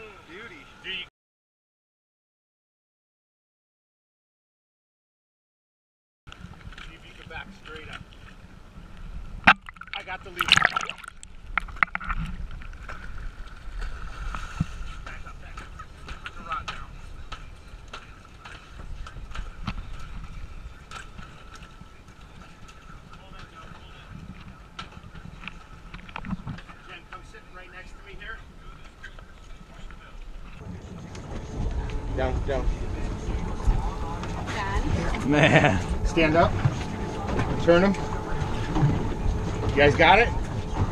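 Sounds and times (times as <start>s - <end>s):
fish splashing in water: 9.5s - 12.1s
boat engine running: 15.0s - 40.9s
wind on microphone: 28.5s - 40.9s.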